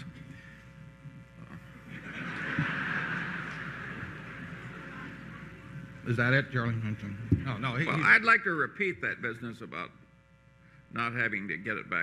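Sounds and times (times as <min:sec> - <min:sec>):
audience laughing: 0:01.8 - 0:05.9.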